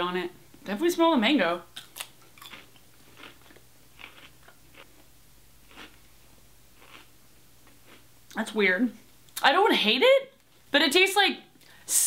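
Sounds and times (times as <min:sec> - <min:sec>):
potato chip crunching: 0:01.7 - 0:06.0, 0:06.8 - 0:07.1.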